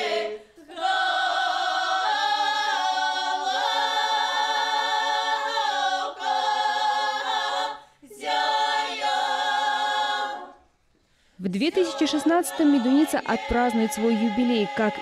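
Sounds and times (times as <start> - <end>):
mixed choir singing unaccompanied: 0.0 - 10.7, 11.6 - 15.0.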